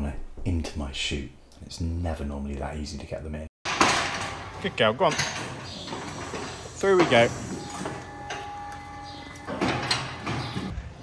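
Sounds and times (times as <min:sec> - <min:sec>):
metallic gate clatter: 0:03.7 - 0:10.7
metal gate squealing: 0:03.8 - 0:10.8.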